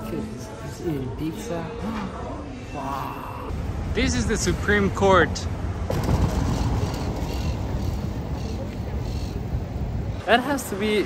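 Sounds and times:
low rumble of traffic: 3.5 - 11.0
wind buffeting microphone: 5.6 - 10.2.

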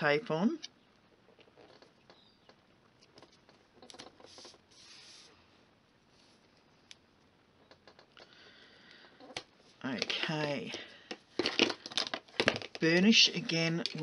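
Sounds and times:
hands rubbing tape on card: 4.0 - 5.4.

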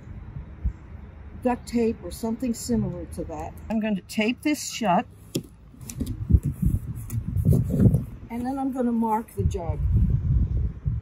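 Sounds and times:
hands rubbing tape on plastic jug: 5.3 - 8.1.

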